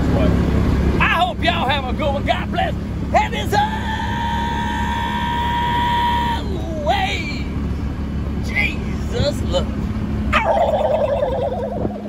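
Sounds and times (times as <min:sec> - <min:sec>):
vehicle engine running: 0:00.0 - 0:12.0.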